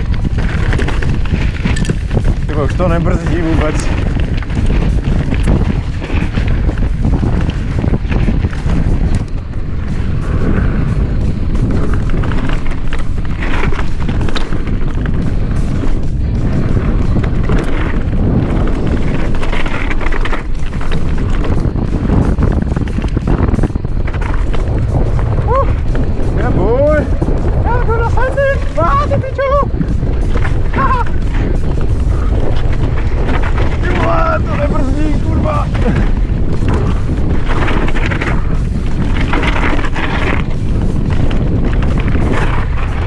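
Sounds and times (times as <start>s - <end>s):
bike rattling and knocking: 0.0s - 43.0s
wind buffeting microphone: 0.0s - 43.0s.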